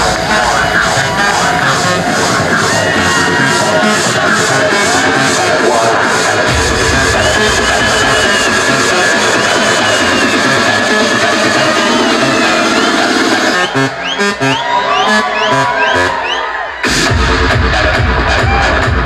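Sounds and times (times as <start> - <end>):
electronic dance music: 0.0 - 19.0.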